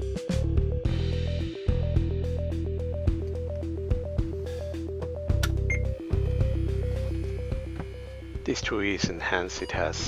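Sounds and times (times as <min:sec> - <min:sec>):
arpeggiated electronic music with beat: 0:00.0 - 0:09.2.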